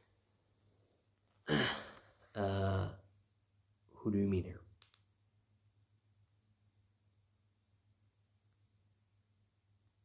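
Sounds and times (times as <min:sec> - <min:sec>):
man sighing: 0:01.4 - 0:03.0.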